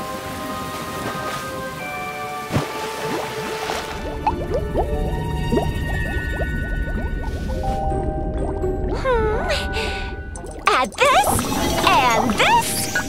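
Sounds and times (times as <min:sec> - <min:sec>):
cartoon background music: 0:00.0 - 0:13.0
rising bubble sounds: 0:03.0 - 0:13.0
low underwater rumble: 0:03.9 - 0:12.4.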